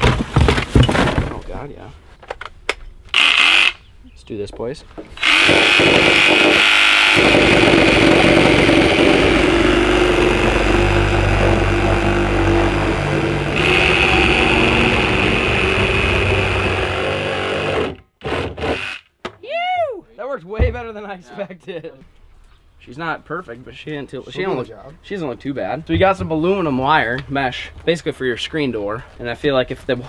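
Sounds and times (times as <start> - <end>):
reciprocating saw cutting plastic: 3.1 - 3.8, 5.2 - 19.1.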